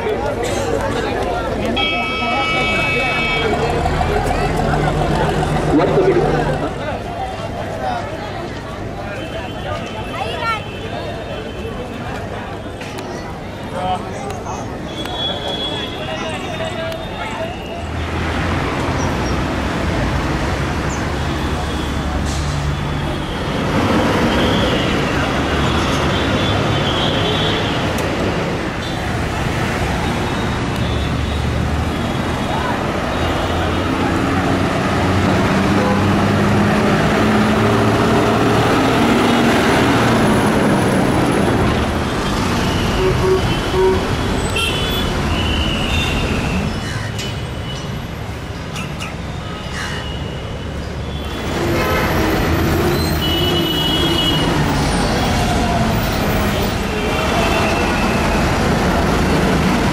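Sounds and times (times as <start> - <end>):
traffic engines running: 0.0 - 59.9
vehicle horns tooting: 1.7 - 3.7, 42.0 - 46.7, 51.0 - 54.7.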